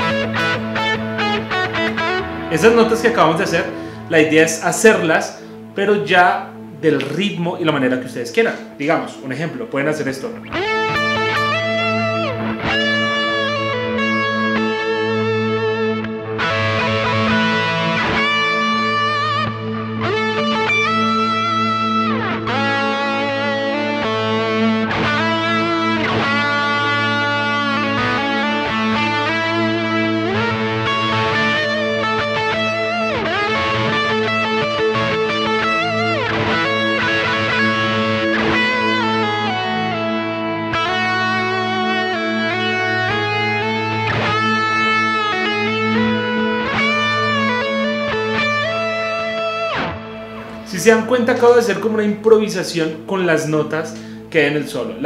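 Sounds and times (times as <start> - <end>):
electric guitar lead: 0.0 - 55.0.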